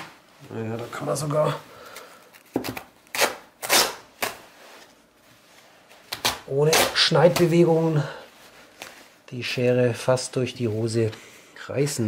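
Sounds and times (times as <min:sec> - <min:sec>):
scratchy tearing sounds: 0:02.6 - 0:04.4, 0:06.1 - 0:07.6.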